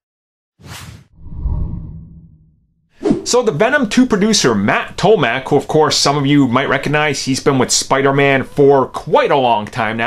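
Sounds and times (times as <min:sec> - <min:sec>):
short whoosh: 0:00.6 - 0:03.3.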